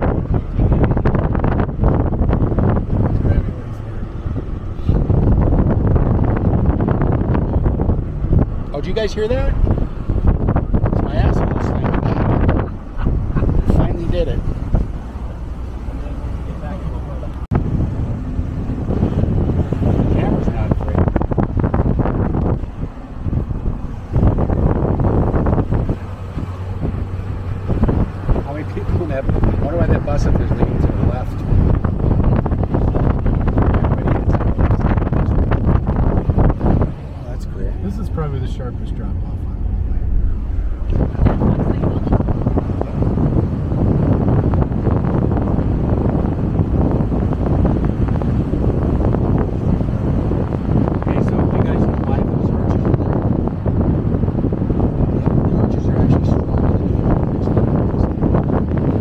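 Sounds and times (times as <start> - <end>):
road noise: 0.0 - 59.0
truck engine: 0.0 - 59.0
wind buffeting microphone: 0.0 - 59.0.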